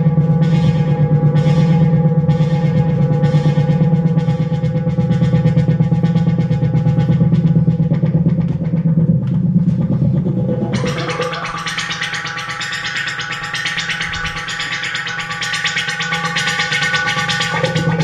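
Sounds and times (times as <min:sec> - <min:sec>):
fast synthesizer arpeggio: 0:00.0 - 0:18.0.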